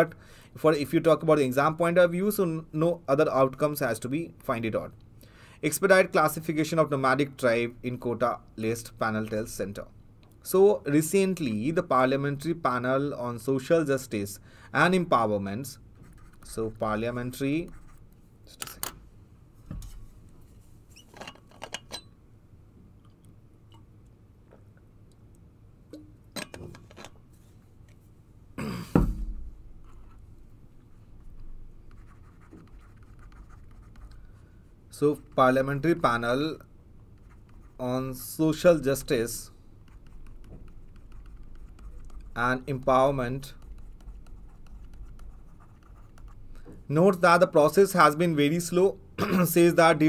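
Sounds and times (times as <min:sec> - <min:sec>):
stylus scratching on pen tablet: 0:16.0 - 0:18.0, 0:31.3 - 0:34.2, 0:37.1 - 0:38.2, 0:39.8 - 0:46.4.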